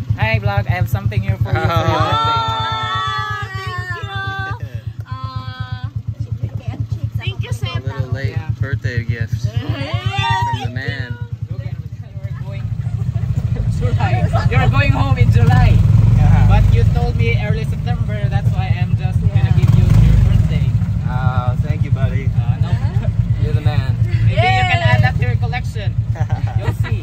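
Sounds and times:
motorcycle engine running: 0.0s - 27.0s
people talking: 0.1s - 27.0s.

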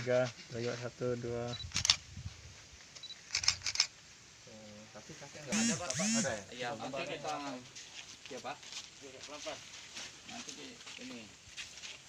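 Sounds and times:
camera focus beep: 3.0s - 3.9s, 5.6s - 6.3s
camera shutter click: 3.3s - 3.9s, 5.5s - 6.3s.

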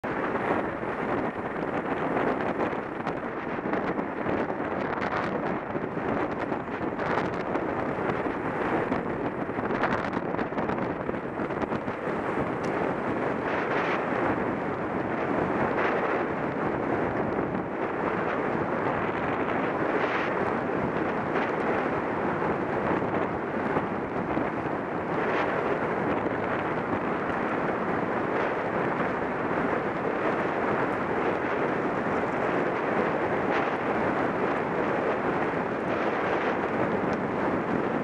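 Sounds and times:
wind rushing on microphone: 0.0s - 38.0s.

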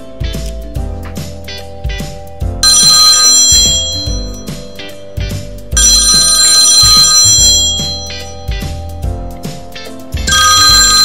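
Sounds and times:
background music with beat: 0.0s - 11.0s
mobile phone ringing: 2.6s - 8.8s, 10.3s - 11.0s.

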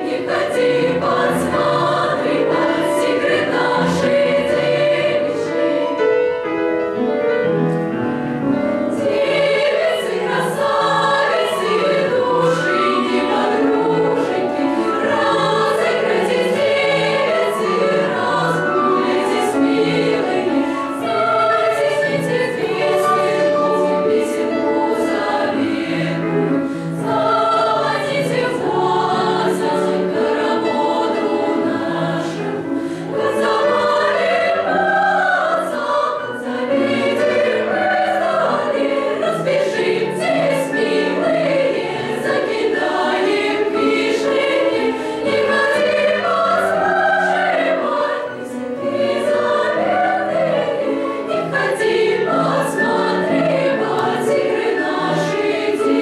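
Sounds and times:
children's choir singing: 0.0s - 7.6s, 8.2s - 56.0s.

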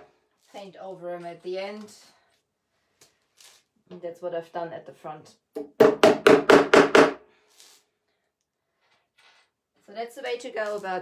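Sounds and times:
hammer tapping nail: 5.6s - 7.2s.

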